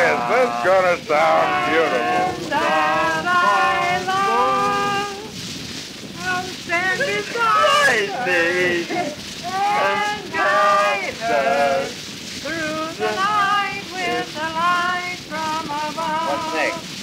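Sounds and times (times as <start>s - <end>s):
people singing together: 0.0s - 5.4s, 6.1s - 17.0s
record crackle and hiss: 0.0s - 17.0s.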